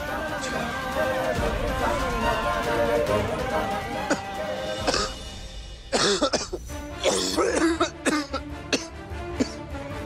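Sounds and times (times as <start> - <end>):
background music: 0.0 - 10.0
man coughing: 4.0 - 5.2, 5.9 - 9.7.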